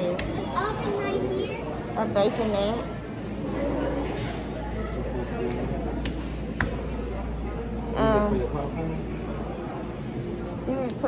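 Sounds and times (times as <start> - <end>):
child's voice: 0.4 - 1.8.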